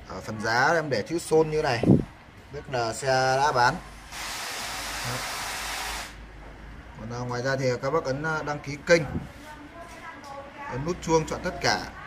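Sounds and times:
high hiss: 4.1s - 6.2s.

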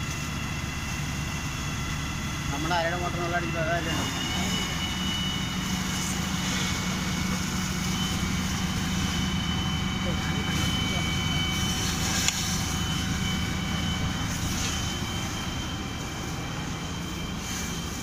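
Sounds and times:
fire engine pump droning: 0.0s - 18.0s.

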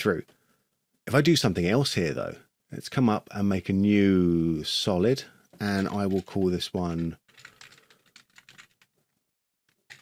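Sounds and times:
person speaking: 1.1s - 7.2s.

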